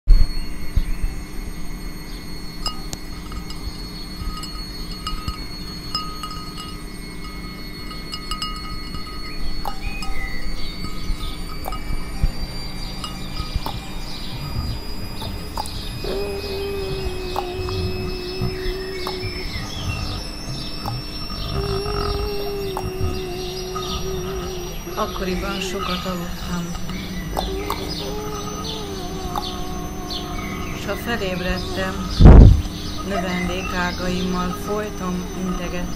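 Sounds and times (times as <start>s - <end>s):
low rumble: 0.1s - 34.1s
steady high whistling tones: 0.1s - 35.9s
wavering lower tone: 0.1s - 35.9s
scattered clicks: 2.6s - 30.2s.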